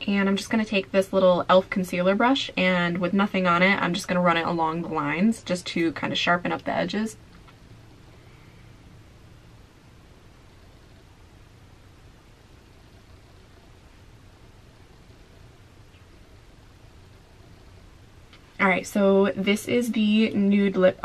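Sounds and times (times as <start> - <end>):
faint steady hiss: 0.0 - 21.0
low hum: 0.0 - 21.0.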